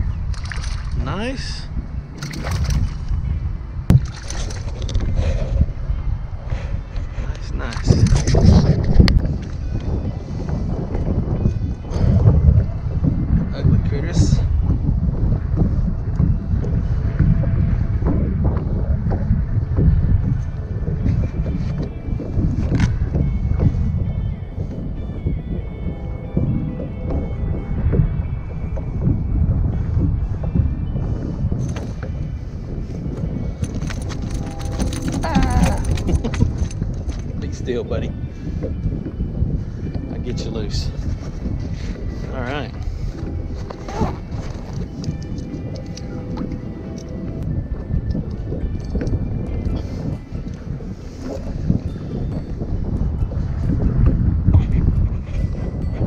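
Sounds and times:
wind rumbling on microphone: 0.0s - 56.0s
faint music with held tones: 5.6s - 56.0s
handling clicks and knocks: 33.6s - 37.3s.

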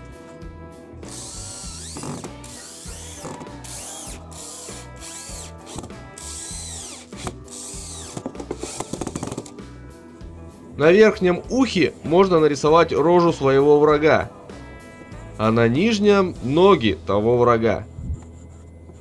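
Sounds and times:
power drill motor whining: 1.0s - 9.5s
rapid clicking of drill: 1.1s - 9.5s.

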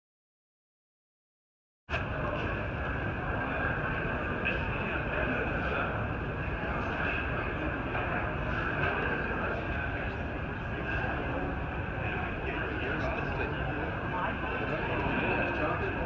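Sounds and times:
murmur of distant voices: 1.9s - 16.0s
ventilation drone: 1.9s - 16.0s.

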